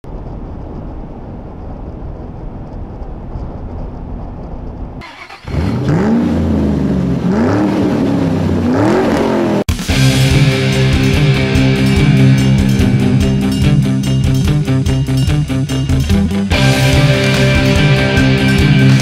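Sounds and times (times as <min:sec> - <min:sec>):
low rumble: 0:00.0 - 0:05.0, 0:09.9 - 0:19.0
car engine revving: 0:05.0 - 0:19.0.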